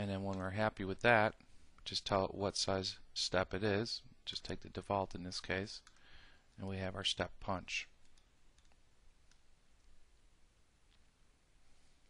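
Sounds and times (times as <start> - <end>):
faint room hiss: 0.0 - 12.0
computer mouse clicks: 5.8 - 6.1, 8.0 - 9.9.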